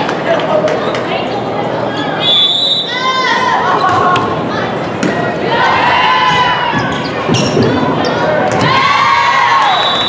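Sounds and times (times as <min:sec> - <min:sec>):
crowd in echoing gym: 0:00.0 - 0:10.0
sneakers squeaking on gym floor: 0:06.7 - 0:08.6.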